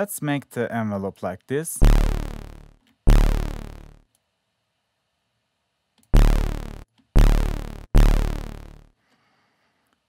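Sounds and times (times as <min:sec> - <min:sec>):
bright buzzy synth bass notes: 0:01.8 - 0:04.0, 0:06.2 - 0:08.9.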